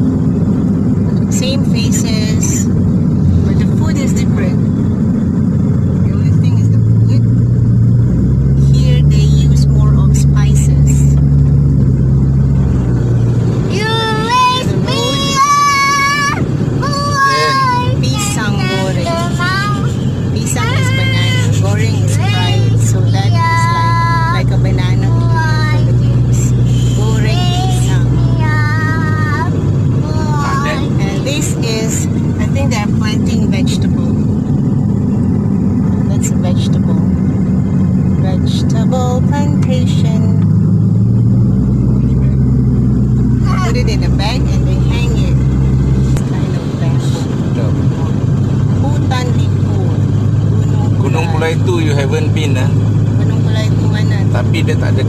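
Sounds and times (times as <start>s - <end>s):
car engine and tyre noise: 0.0s - 55.0s.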